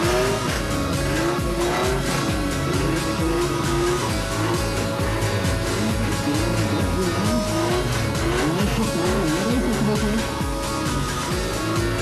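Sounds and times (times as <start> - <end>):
car engine rolling by: 0.0 - 12.0
guitar-backed music: 0.0 - 12.0.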